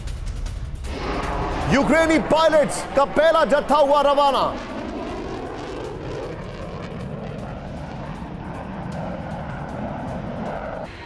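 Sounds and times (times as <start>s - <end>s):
background music: 0.0s - 11.0s
fighter jet engine: 0.0s - 11.0s.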